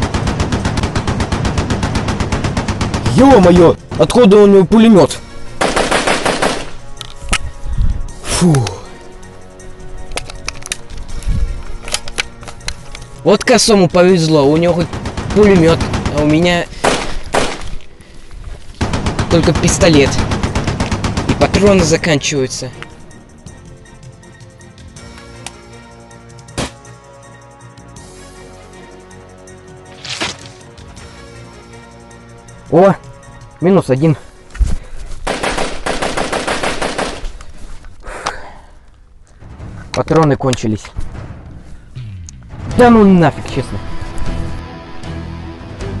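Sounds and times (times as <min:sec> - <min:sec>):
automatic gunfire: 0:00.0 - 0:03.6, 0:05.6 - 0:06.7, 0:14.8 - 0:17.7, 0:35.3 - 0:37.3
gunshots: 0:00.0 - 0:04.2, 0:05.6 - 0:06.8, 0:14.7 - 0:17.8, 0:18.8 - 0:22.0, 0:35.2 - 0:37.4
background music: 0:00.0 - 0:46.0.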